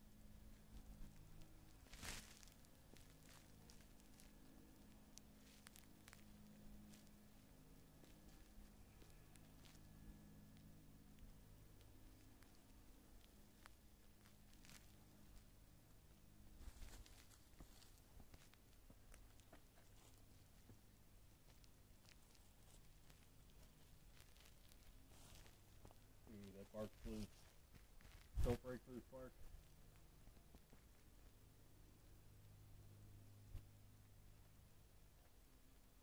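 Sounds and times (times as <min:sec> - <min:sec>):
faint low hum: 0:00.0 - 0:36.0
light ticks and rustles: 0:00.0 - 0:36.0.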